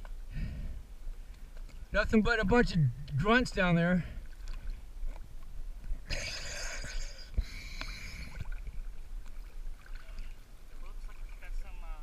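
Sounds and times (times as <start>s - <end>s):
water lapping and sloshing: 0.0s - 12.0s
small splashes and clicks: 4.3s - 5.5s, 7.7s - 11.7s.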